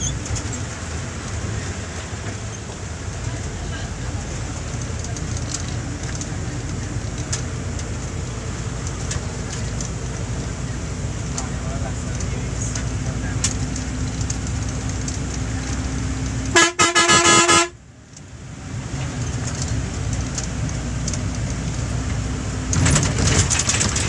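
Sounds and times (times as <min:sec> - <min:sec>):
bus engine and road noise: 0:00.0 - 0:24.0
vehicle horn honking: 0:16.5 - 0:17.8.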